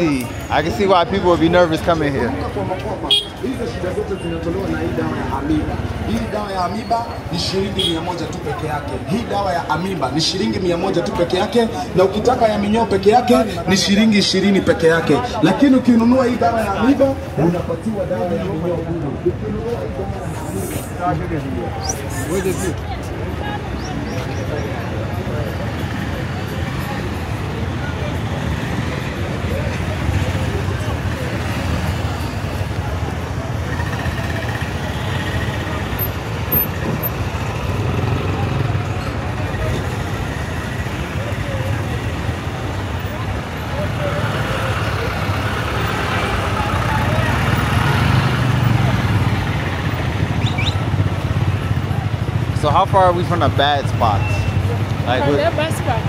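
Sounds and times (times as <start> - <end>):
vehicle engines passing: 0.0 - 56.0.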